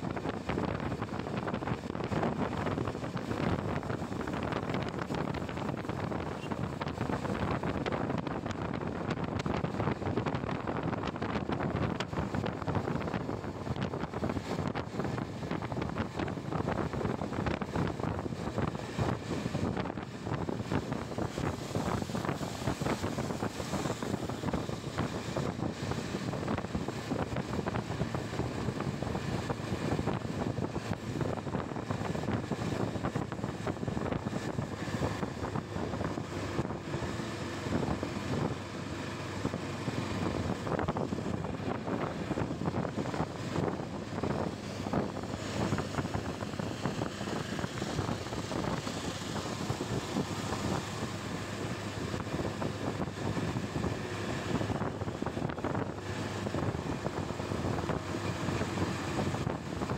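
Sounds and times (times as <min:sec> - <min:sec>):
motorcycle engine and tyre noise: 0:00.0 - 0:59.9
wind rushing over microphone: 0:00.0 - 0:59.9.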